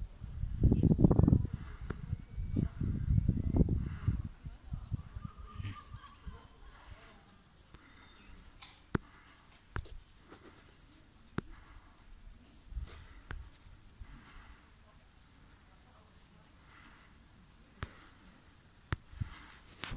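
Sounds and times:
faint outdoor background: 0:00.0 - 0:19.9
small birds chirping: 0:00.0 - 0:19.9.

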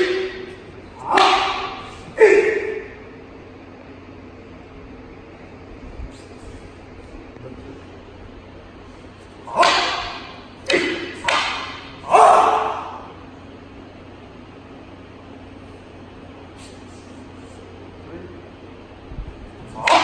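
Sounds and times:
wooden staffs striking together: 0:00.0 - 0:03.0, 0:09.4 - 0:13.2, 0:19.7 - 0:20.0.

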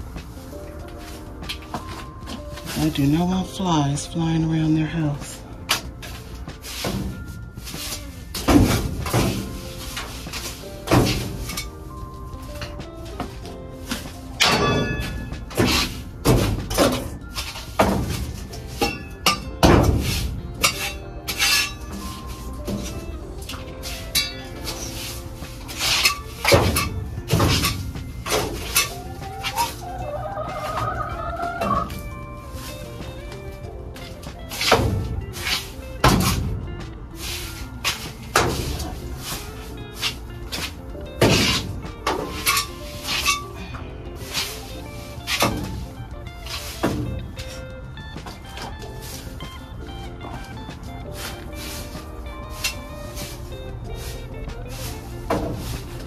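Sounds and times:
background music: 0:00.0 - 0:56.0
hand rake scraping and knocking: 0:00.0 - 0:56.0.

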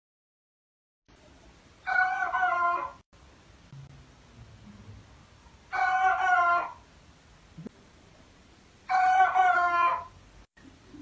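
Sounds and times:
rooster crowing: 0:01.8 - 0:03.0, 0:05.7 - 0:06.8, 0:08.9 - 0:10.2
faint low sound: 0:03.2 - 0:05.7.

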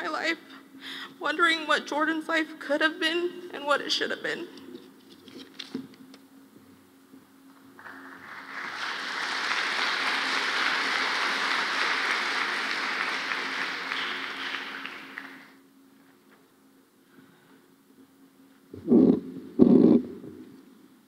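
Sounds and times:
faint steady hum: 0:00.0 - 0:21.0
large audience applauding: 0:07.8 - 0:15.6.

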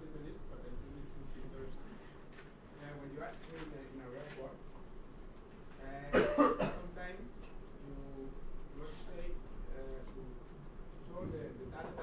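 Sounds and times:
person coughing: 0:06.1 - 0:06.9.

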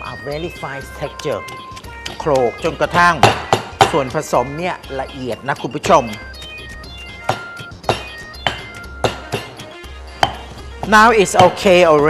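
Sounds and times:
background music: 0:00.0 - 0:12.0
stone pestle pounding in mortar: 0:02.9 - 0:04.2, 0:07.2 - 0:09.6, 0:10.2 - 0:12.0.

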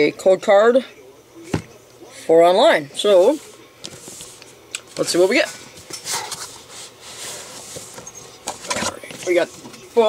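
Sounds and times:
cardboard rustling scrape: 0:05.0 - 0:09.6.

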